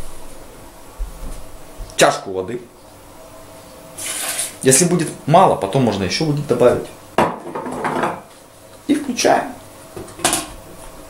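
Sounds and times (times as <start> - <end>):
blender jug knocking on counter: 7.2 - 8.2.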